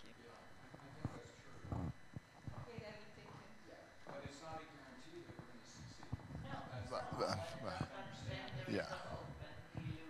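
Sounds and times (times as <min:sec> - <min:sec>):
faint speech: 0:00.0 - 0:10.0.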